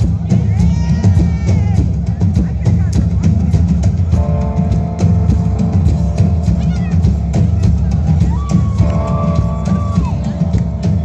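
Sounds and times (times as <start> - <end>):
bass guitar: 0.0 - 11.0
drum kit: 0.0 - 11.0.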